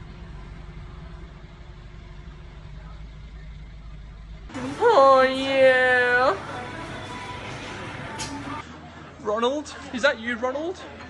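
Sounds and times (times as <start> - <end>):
car engine idling: 0.0 - 8.6.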